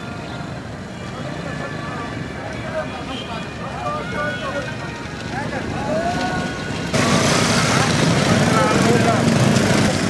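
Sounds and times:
traffic rumble: 0.0s - 10.0s
people talking: 1.0s - 10.0s.

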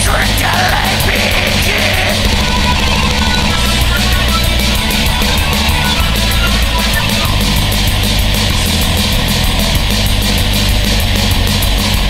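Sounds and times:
distorted metal guitars and bass: 0.0s - 12.0s
fast drumming: 0.0s - 12.0s.

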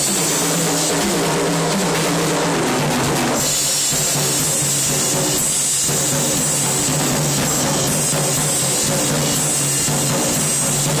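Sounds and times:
drum kit groove: 0.0s - 11.0s.

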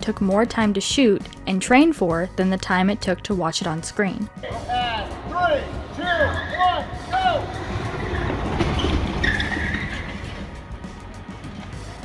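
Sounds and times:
rising-and-falling call: 4.4s - 10.6s.

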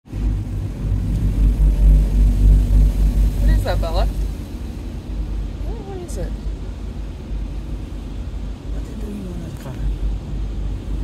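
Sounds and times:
car wash rumble inside car: 0.0s - 11.0s.

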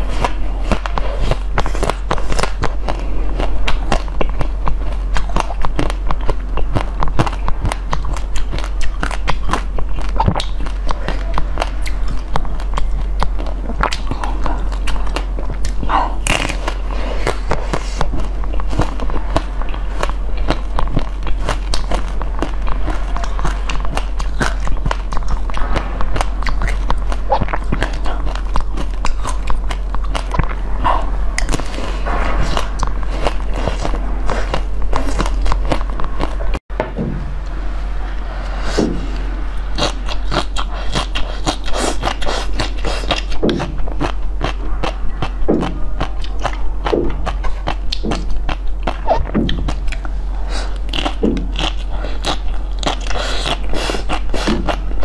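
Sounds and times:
crunchy chewing: 0.0s - 36.6s, 37.4s - 55.0s
low hum: 0.0s - 55.0s.

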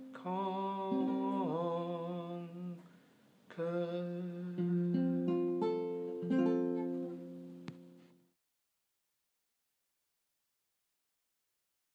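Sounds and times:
acoustic guitar picking single notes: 0.0s - 2.9s, 3.6s - 8.2s
person humming over guitar: 0.0s - 2.9s, 3.5s - 7.5s.

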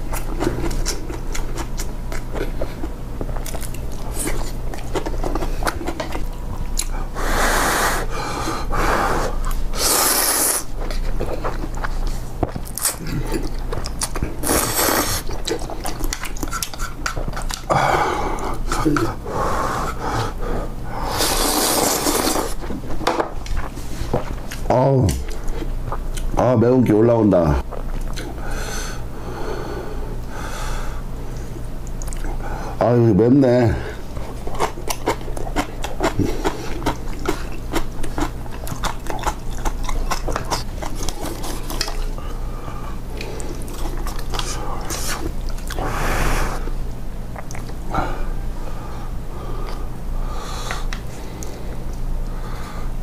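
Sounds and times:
chewing: 0.1s - 7.1s, 10.7s - 17.7s, 31.4s - 32.4s, 34.1s - 42.4s, 43.1s - 45.8s, 47.3s - 47.8s
person slurping noodles: 7.2s - 10.7s, 14.4s - 15.3s, 21.0s - 22.6s.

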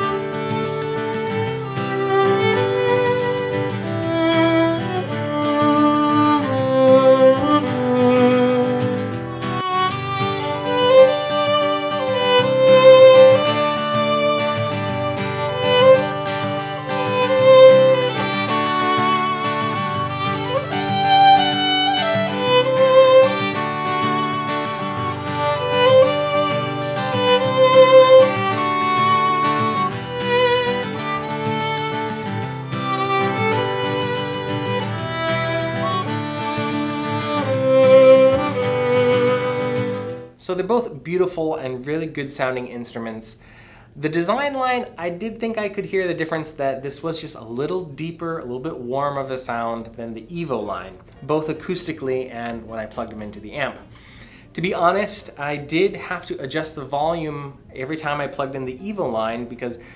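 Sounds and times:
bowed violin melody: 0.0s - 40.4s
low chord accompaniment: 1.2s - 40.2s.

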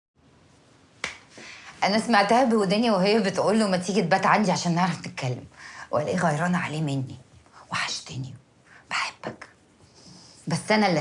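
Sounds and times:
woman speaking: 1.8s - 9.6s, 10.4s - 11.0s.

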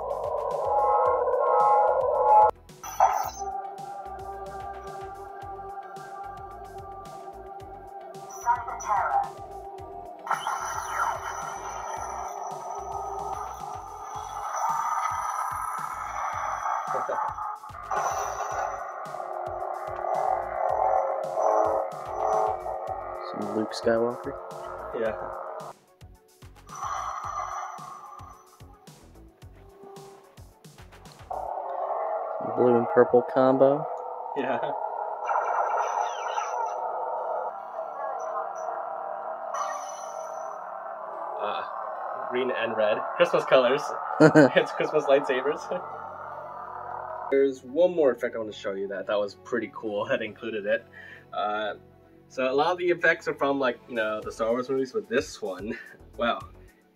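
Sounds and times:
lightsaber electronic hum: 0.0s - 25.7s, 34.4s - 38.7s
bright electronic effect sounds: 2.8s - 3.5s, 10.2s - 19.0s.

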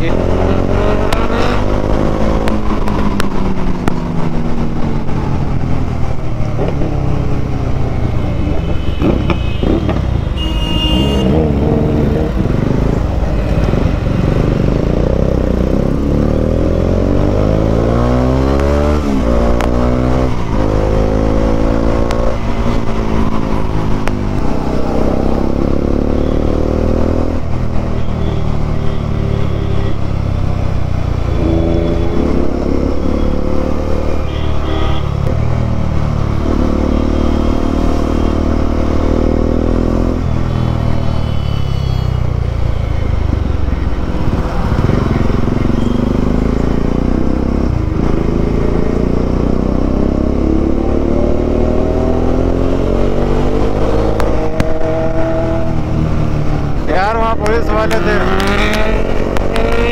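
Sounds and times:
motorcycle engine revving: 0.0s - 41.2s, 42.3s - 59.9s
low road rush: 0.0s - 59.9s.

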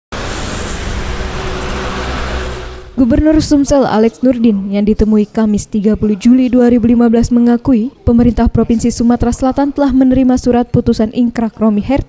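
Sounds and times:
road traffic rumble: 0.1s - 3.7s.

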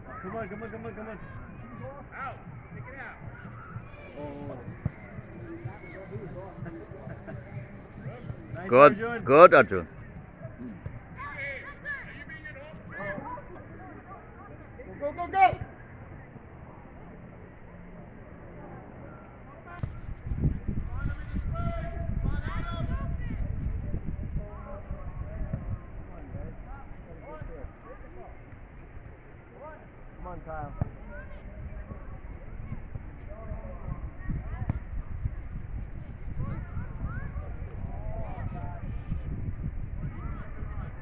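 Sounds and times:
wind rumble on microphone: 19.8s - 28.3s, 30.1s - 41.0s.

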